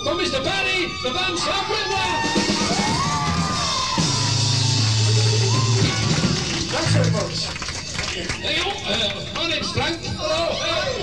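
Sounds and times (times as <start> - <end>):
live rock band playing: 1.9 - 7.2.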